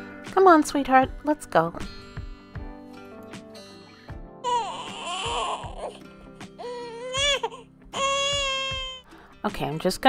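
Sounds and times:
soft background music: 0.0s - 10.0s
infant crying: 4.4s - 9.1s.

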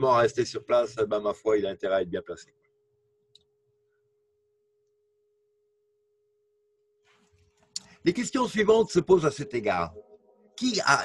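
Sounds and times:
click: 3.3s - 3.5s.

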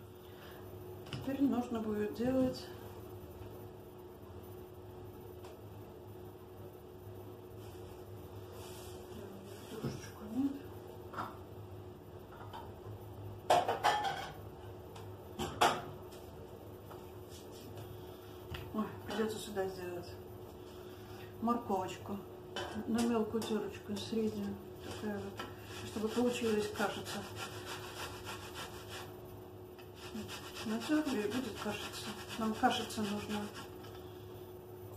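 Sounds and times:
dishes and utensils clinking: 13.5s - 14.4s
carrot scraping on metal grater: 25.7s - 29.1s, 30.0s - 33.7s.

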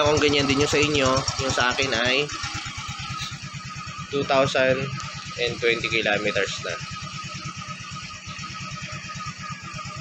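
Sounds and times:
scooter engine idling: 0.0s - 10.0s.

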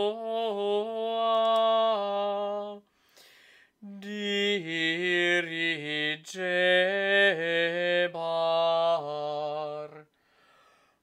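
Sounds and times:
man singing chant: 0.0s - 2.9s, 3.8s - 10.1s
singer breathing: 2.9s - 3.8s, 10.1s - 11.0s.

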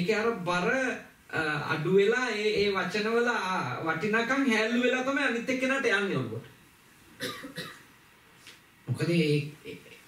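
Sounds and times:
person coughing: 7.2s - 7.8s.

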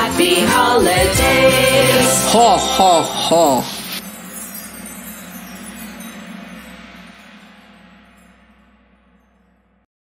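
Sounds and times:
chime-like bell tones: 0.0s - 9.8s.

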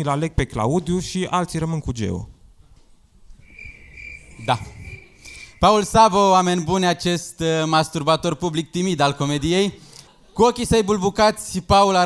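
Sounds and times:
crickets chirping: 3.3s - 6.3s.

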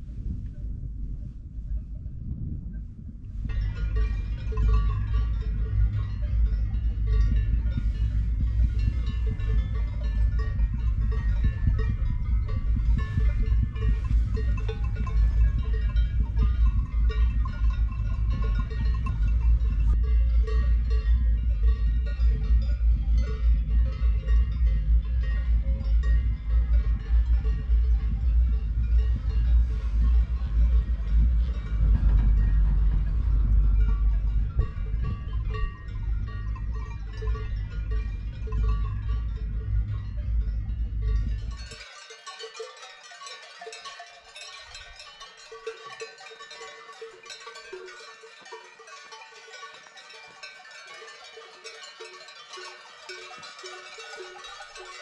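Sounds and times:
wind rumble on microphone: 0.0s - 55.0s
cowbells ringing: 3.4s - 55.0s.

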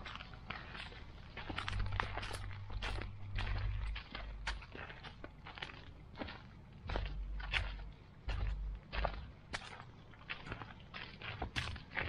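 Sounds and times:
footsteps on grit path: 0.0s - 12.0s
low rumble: 0.9s - 5.3s, 6.8s - 9.4s.

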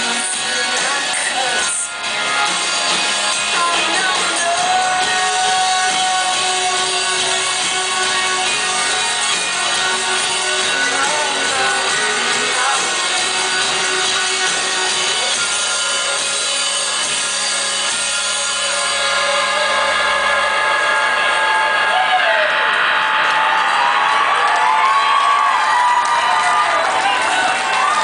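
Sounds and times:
crowd cheering and whooping: 18.6s - 28.0s.

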